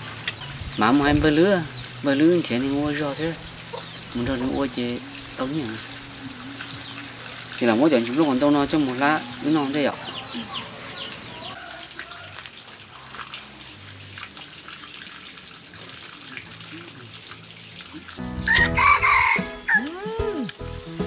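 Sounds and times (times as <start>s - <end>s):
background music: 0.0s - 10.9s, 18.2s - 21.0s
rooster crowing: 10.2s - 12.4s, 18.5s - 19.8s.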